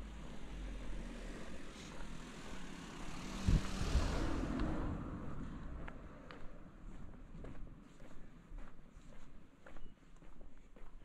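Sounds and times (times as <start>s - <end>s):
passing vehicle engine rushing: 0.0s - 6.3s.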